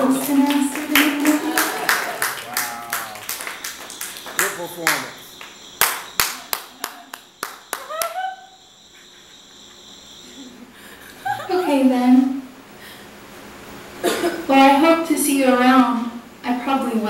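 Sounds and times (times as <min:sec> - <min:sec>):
audience applauding: 0:00.0 - 0:08.3
voices calling out: 0:00.0 - 0:17.0.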